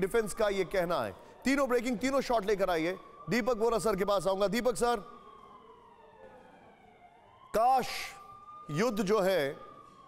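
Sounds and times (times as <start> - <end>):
faint siren-like wailing tone: 0.0 - 10.0.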